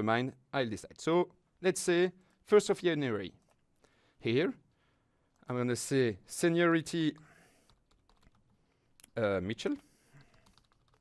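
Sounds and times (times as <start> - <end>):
computer keyboard typing: 7.2 - 8.6, 10.2 - 11.0.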